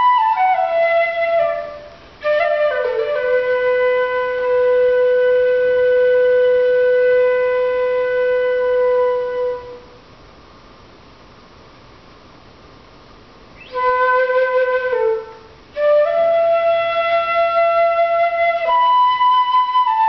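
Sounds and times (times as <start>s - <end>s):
bamboo flute solo: 0.0s - 10.0s, 13.6s - 20.0s.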